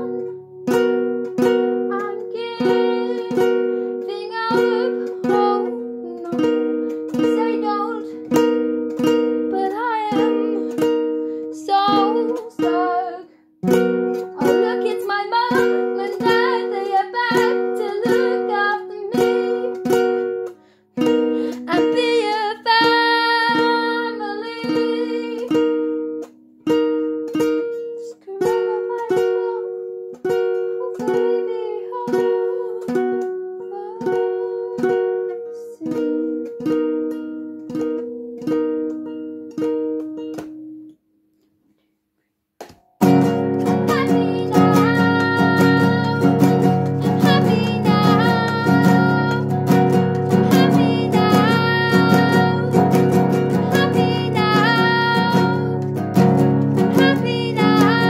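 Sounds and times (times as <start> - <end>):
young woman singing: 0.0 - 26.0, 27.4 - 37.3, 43.1 - 58.0
acoustic guitar strummed: 42.8 - 58.0.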